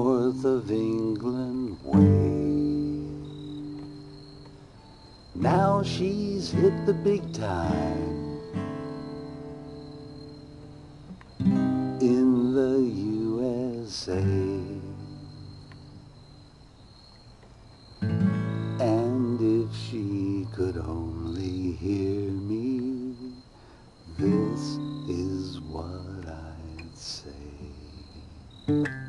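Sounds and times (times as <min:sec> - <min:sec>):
acoustic guitar chord ringing: 0:00.0 - 0:16.2, 0:18.0 - 0:23.3, 0:24.2 - 0:26.8
high insect trill: 0:00.0 - 0:29.0.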